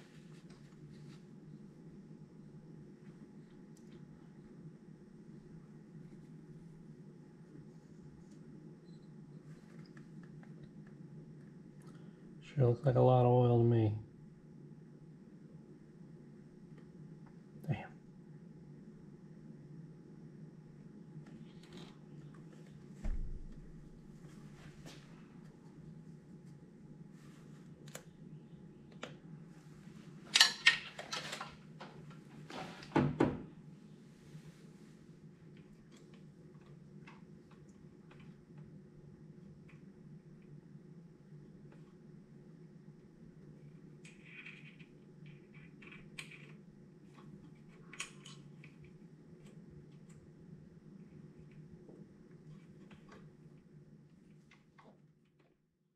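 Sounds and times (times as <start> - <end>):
steady low hum: 0.0 - 55.5.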